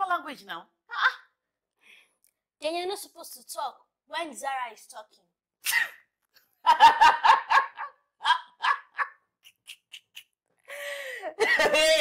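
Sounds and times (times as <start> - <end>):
woman laughing: 6.6 - 12.0
breathy gasps: 10.6 - 11.4.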